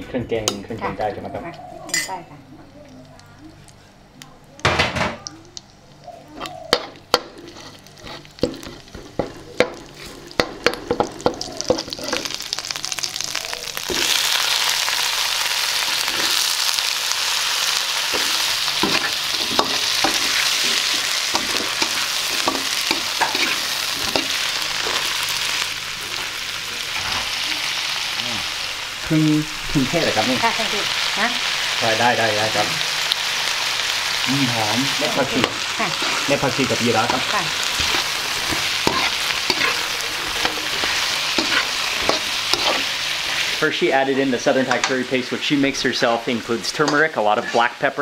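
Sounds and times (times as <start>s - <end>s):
loud steady sizzle: 0.0s - 48.0s
paste frying in oil: 4.4s - 48.0s
metal spatula scraping a wok: 6.8s - 9.0s, 18.1s - 25.1s, 35.2s - 43.6s.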